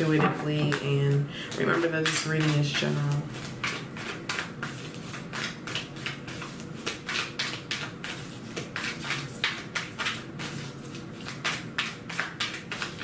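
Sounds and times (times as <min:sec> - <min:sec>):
cards being shuffled: 0:01.8 - 0:13.0.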